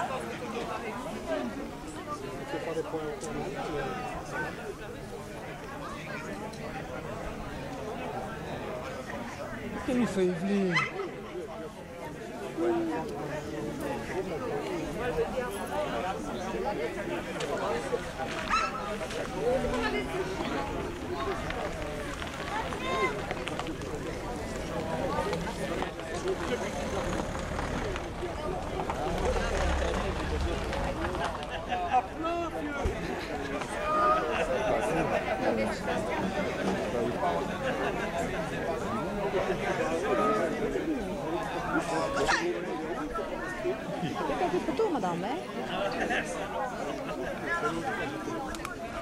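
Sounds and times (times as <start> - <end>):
people chattering: 0.0 - 49.0
people talking outdoors: 0.0 - 49.0.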